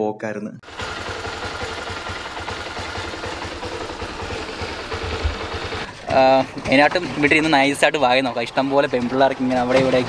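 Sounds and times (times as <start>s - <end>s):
small engine running: 0.6s - 10.0s.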